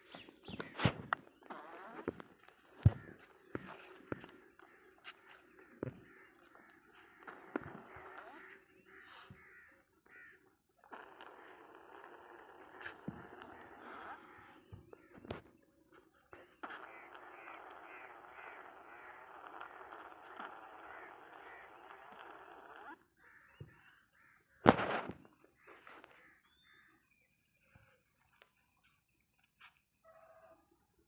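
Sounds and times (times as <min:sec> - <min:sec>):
quick repeated bird calls: 0:00.0 - 0:30.6
faint birds calling: 0:00.0 - 0:31.0.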